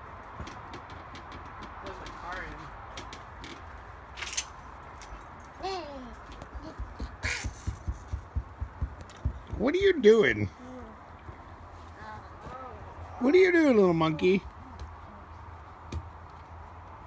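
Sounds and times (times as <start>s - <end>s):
toddler vocal sounds: 5.6s - 7.7s.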